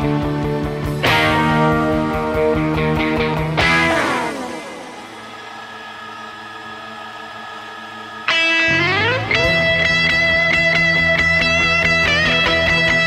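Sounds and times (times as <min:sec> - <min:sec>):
strummed electric guitar chords: 0:00.0 - 0:05.3, 0:08.3 - 0:13.0
electric guitar chord gliding down: 0:08.3 - 0:13.0
electric guitar rising pitch glide: 0:08.3 - 0:13.0.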